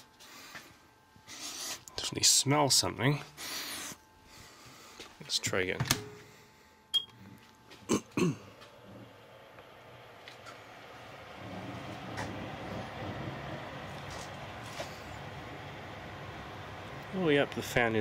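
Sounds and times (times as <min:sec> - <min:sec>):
microwave oven running hum: 0:00.0 - 0:18.0
keypad beep: 0:07.0 - 0:07.2.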